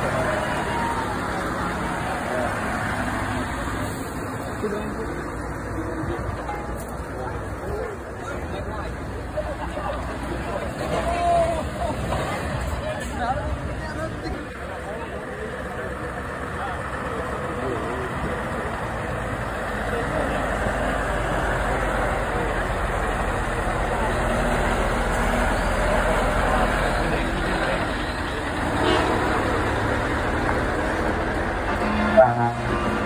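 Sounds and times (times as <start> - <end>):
truck diesel engine rumbling: 0.0 - 33.0.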